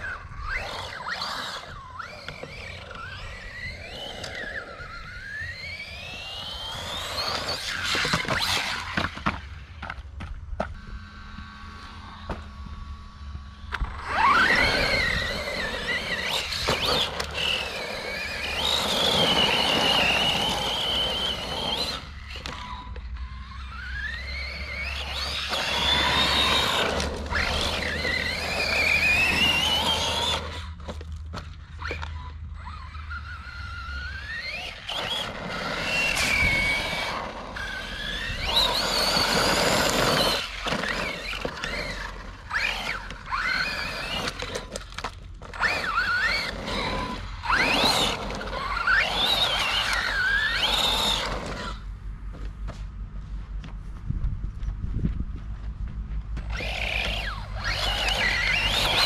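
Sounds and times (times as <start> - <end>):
electric motor whining: 0.0 - 52.0, 56.4 - 59.0
tyres on loose dirt: 0.0 - 59.0.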